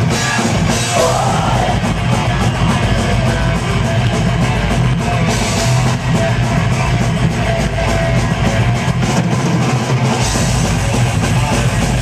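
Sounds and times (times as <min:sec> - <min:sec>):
deep bass: 0:00.0 - 0:09.4
distorted electric guitars: 0:00.0 - 0:12.0
drum kit: 0:00.0 - 0:12.0.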